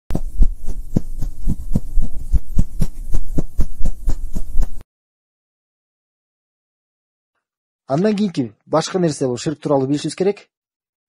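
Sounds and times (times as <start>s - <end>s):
low hum: 0.1s - 4.8s.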